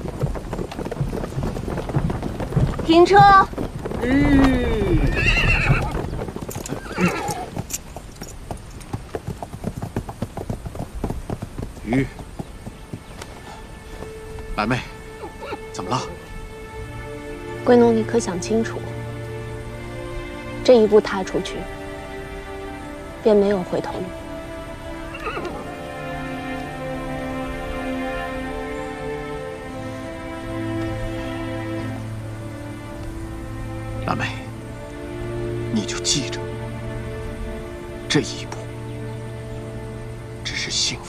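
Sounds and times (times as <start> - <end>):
hooves clopping: 0.0 - 40.9
background music with sustained tones: 0.0 - 41.0
horse whinnying: 4.0 - 7.8, 15.2 - 15.7, 24.9 - 25.7.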